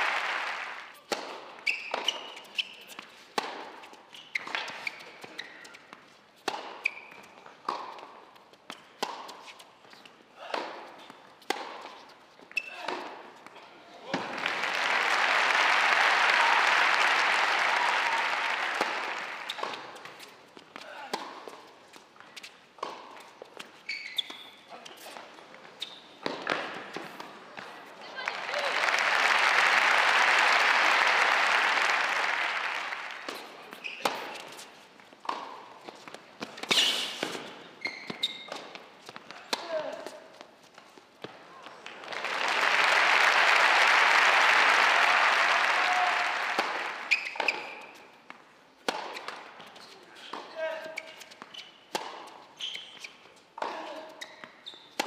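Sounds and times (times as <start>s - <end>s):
crowd applause: 0.0s - 1.0s, 14.2s - 19.7s, 28.1s - 33.5s, 41.9s - 47.2s.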